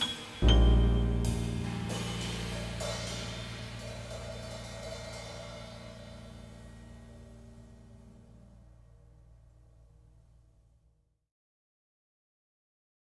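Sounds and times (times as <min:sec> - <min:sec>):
cymbal ringing: 0:00.0 - 0:10.3
jazz ensemble final chord: 0:00.4 - 0:08.6.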